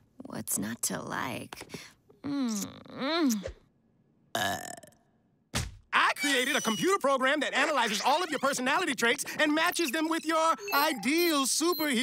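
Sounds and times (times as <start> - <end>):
cartoon burp-like grunt: 4.3 - 5.1.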